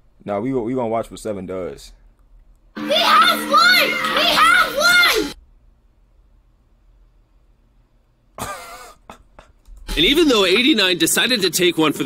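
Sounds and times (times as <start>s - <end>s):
man coughing: 8.4s - 9.2s.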